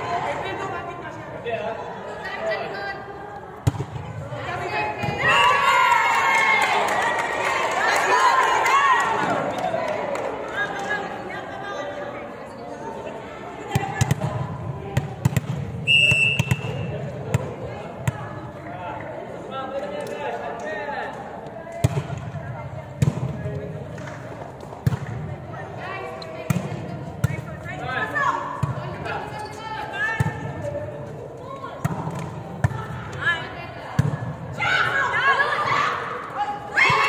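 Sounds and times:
players calling and chatting: 0:07.2 - 0:37.0
short whistle: 0:15.8 - 0:16.9.

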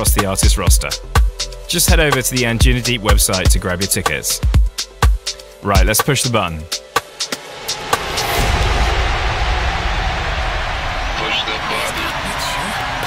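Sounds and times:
whoosh of noise: 0:07.3 - 0:11.6
deep rumble: 0:07.6 - 0:11.6.

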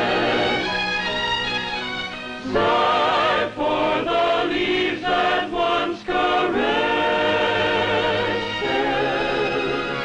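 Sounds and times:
choir singing held chord: 0:00.0 - 0:00.8, 0:02.4 - 0:10.0.

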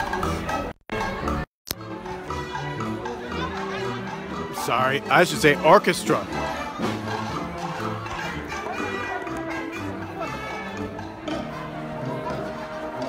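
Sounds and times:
crowd chatter: 0:00.0 - 0:13.0
orchestra playing held notes: 0:02.1 - 0:13.0.

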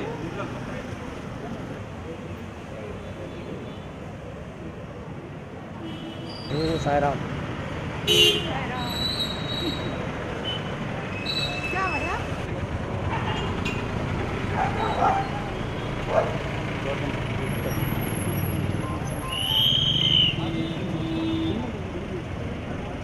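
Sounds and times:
passing vehicle engines: 0:00.0 - 0:23.0.

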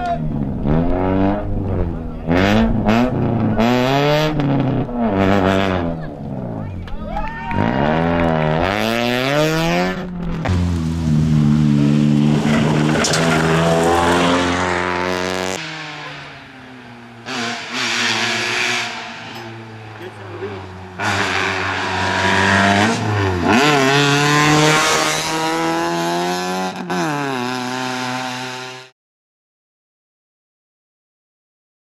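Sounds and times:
rally car engine revving: 0:00.0 - 0:28.9.

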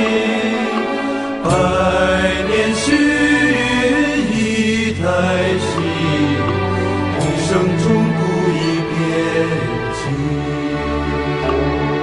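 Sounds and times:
instrumental accompaniment: 0:00.0 - 0:12.0
person singing slow lines: 0:00.0 - 0:12.0.

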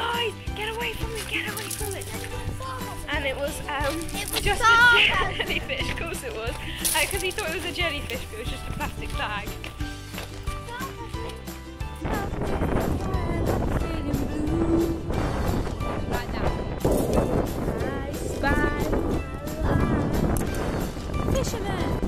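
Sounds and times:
background music: 0:00.0 - 0:22.0
wind buffeting microphone: 0:00.2 - 0:22.0.

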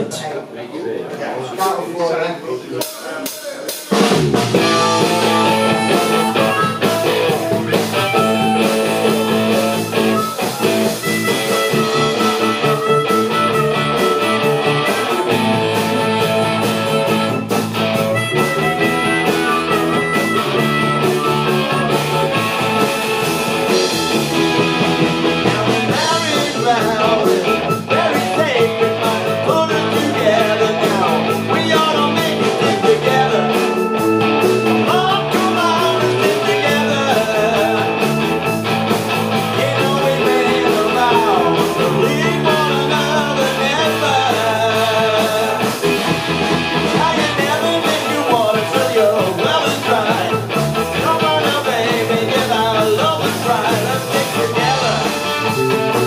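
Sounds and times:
drums: 0:02.6 - 0:56.0
keyboards: 0:02.8 - 0:56.0
bass guitar: 0:03.7 - 0:56.0
electric guitar: 0:03.9 - 0:56.0
harmonica lead: 0:04.0 - 0:56.0.

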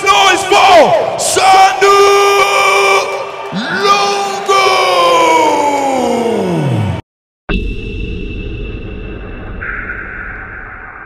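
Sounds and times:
crowd cheering: 0:00.0 - 0:07.0.

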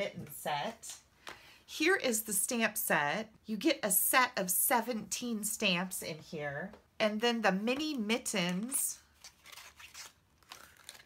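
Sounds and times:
plastic packaging crinkling: 0:09.0 - 0:11.0.

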